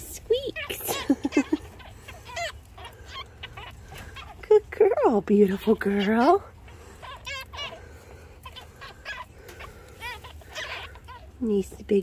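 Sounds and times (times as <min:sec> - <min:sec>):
baby rabbits squeaking: 0:00.0 - 0:12.0.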